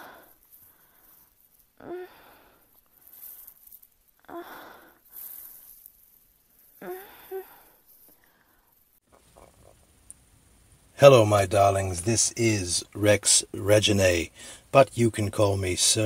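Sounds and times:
faint hiss: 0:00.0 - 0:16.0
person moaning: 0:01.8 - 0:02.2
person sighing and gasping: 0:01.8 - 0:02.8, 0:04.2 - 0:05.0, 0:06.8 - 0:07.8.

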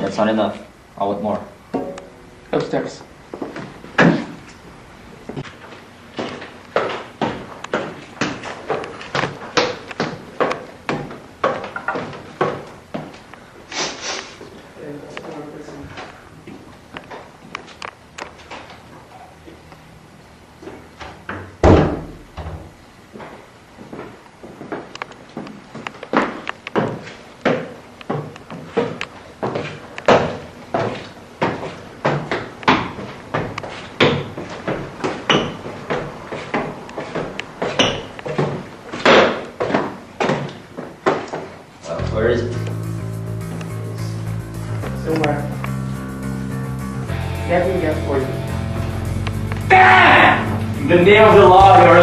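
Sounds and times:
footsteps thudding up stairs: 0:06.1 - 0:13.2, 0:21.0 - 0:41.6
door slamming shut: 0:21.6 - 0:22.7.

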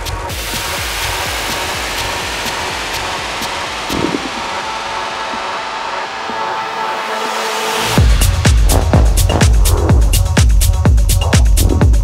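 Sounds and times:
techno track: 0:00.0 - 0:12.0
dense noise wash: 0:00.3 - 0:08.0.

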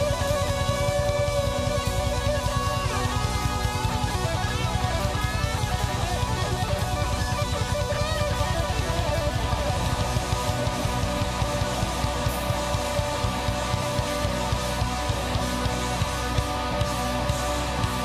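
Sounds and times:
bass and drums: 0:00.0 - 0:18.0
electric guitar bending notes: 0:00.0 - 0:18.0.

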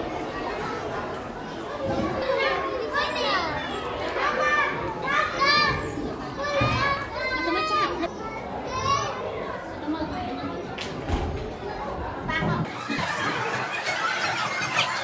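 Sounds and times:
murmur of visitors: 0:00.0 - 0:15.0
young children talking and calling: 0:00.0 - 0:15.0.

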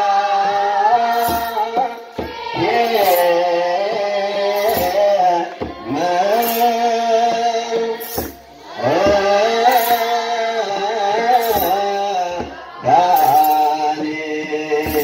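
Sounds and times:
children's choir chanting: 0:00.0 - 0:15.0
shaken sistrum jingle: 0:00.6 - 0:15.0.

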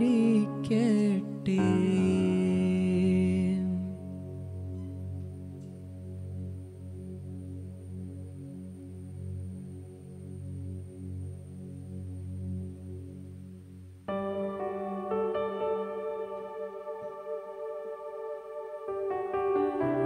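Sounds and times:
keyboard chords drone: 0:00.0 - 0:20.0.

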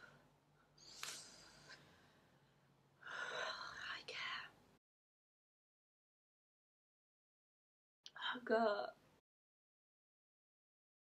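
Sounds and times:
woman whispering: 0:03.5 - 0:04.6, 0:08.1 - 0:08.9.

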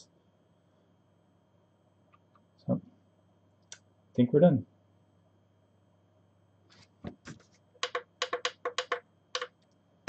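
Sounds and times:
sharp clicks or taps: 0:07.8 - 0:09.5.

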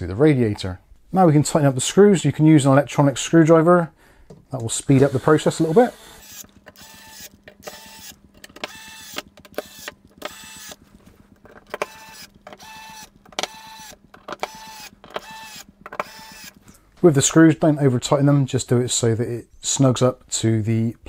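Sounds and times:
electric screwdriver whining: 0:04.9 - 0:16.8.

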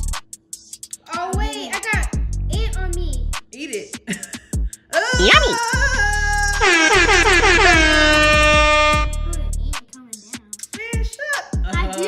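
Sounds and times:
background music: 0:00.0 - 0:12.0
warbling cry: 0:05.0 - 0:09.1
horn-like blare sliding down: 0:06.6 - 0:09.1.

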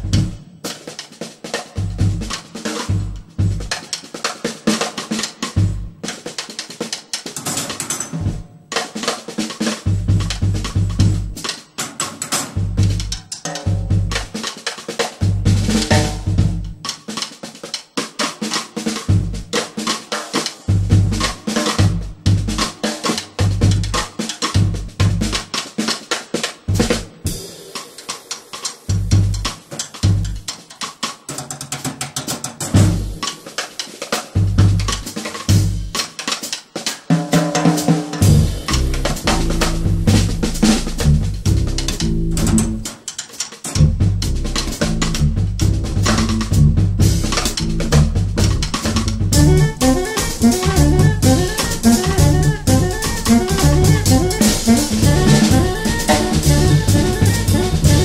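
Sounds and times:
drum kit playing: 0:00.0 - 0:58.0
low pitched bass notes: 0:38.2 - 0:42.8, 0:43.8 - 0:58.0.

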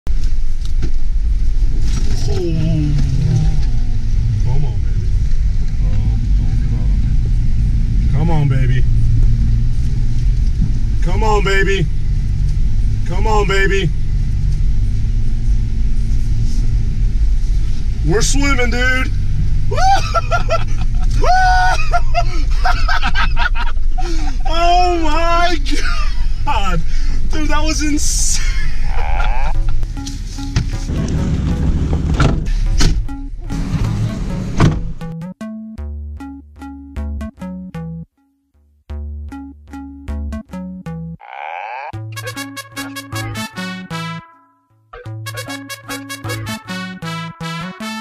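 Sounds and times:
engine rumbling inside cabin: 0:00.1 - 0:35.2
people shouting: 0:19.7 - 0:20.2, 0:21.2 - 0:22.0
people laughing: 0:19.7 - 0:24.7, 0:25.7 - 0:26.5, 0:28.4 - 0:29.8
rattles and knocks: 0:30.5 - 0:33.1.

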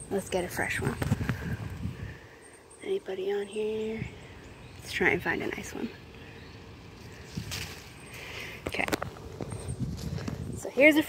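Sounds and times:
wind rumbling on microphone: 0:00.0 - 0:02.3, 0:03.8 - 0:11.0
leaves and twigs rustling: 0:00.0 - 0:02.8, 0:03.4 - 0:11.0.

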